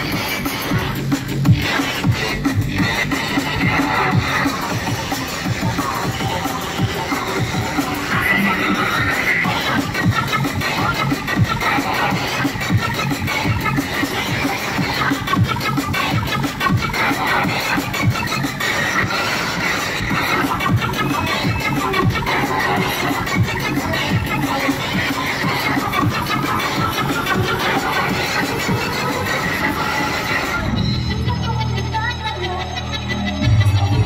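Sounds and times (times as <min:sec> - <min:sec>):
drum and bass music: 0:00.0 - 0:34.0.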